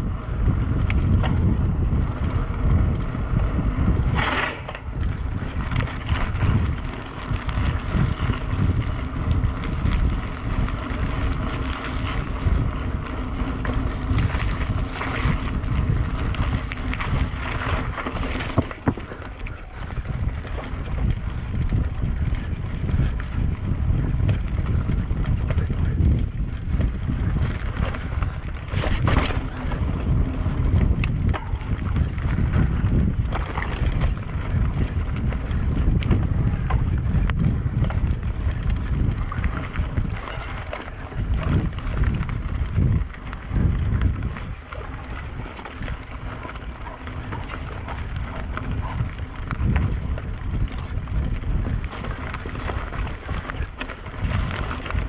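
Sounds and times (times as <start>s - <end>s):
tyres rolling on dirt path: 0.0s - 55.0s
wind buffeting microphone: 0.0s - 55.0s
bike rattling clicks: 0.2s - 55.0s.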